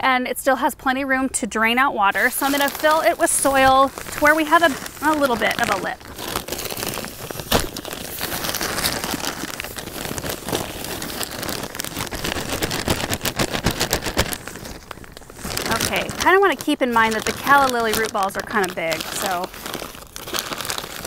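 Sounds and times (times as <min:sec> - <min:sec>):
plastic bag crinkling: 0:02.0 - 0:21.0.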